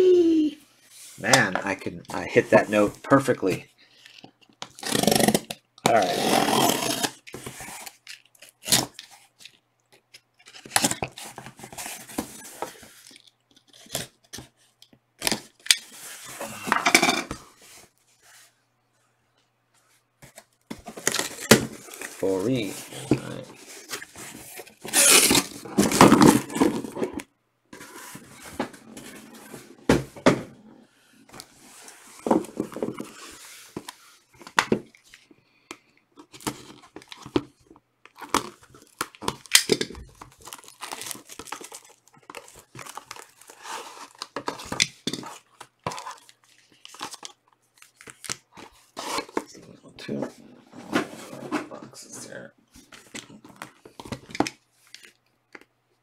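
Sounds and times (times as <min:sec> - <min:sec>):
cardboard shifting and knocking: 0:27.8 - 0:30.6
plastic shrink-wrap crinkling and tearing: 0:38.1 - 0:44.4.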